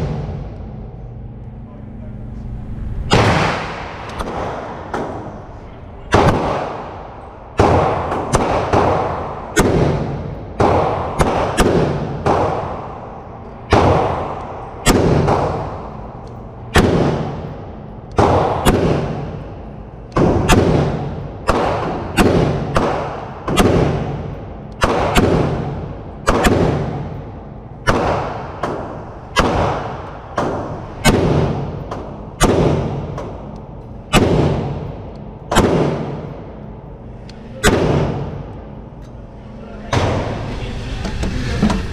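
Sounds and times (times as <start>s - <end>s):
rifle shots echoing indoors: 0.0s - 1.2s, 3.0s - 40.4s.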